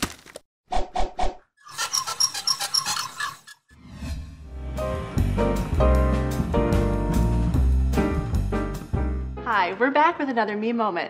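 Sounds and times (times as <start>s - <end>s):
short high squeaks: 1.6s - 3.8s.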